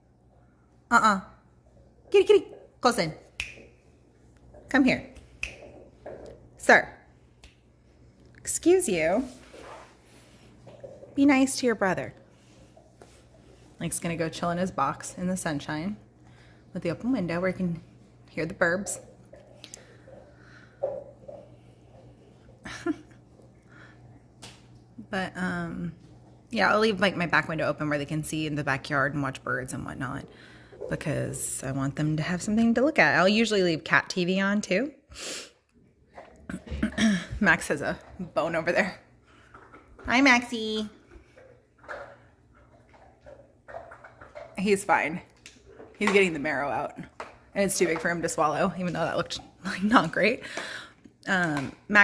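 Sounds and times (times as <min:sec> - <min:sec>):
low steady hum: 0:00.0 - 0:52.0
dog chewing and gulping: 0:09.8 - 0:11.5, 0:19.0 - 0:22.6, 0:38.0 - 0:40.4, 0:41.0 - 0:46.0.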